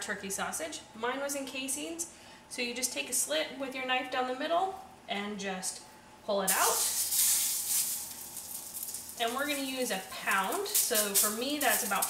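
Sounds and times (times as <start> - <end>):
sausage meat sizzling in a skillet: 6.5 - 12.0.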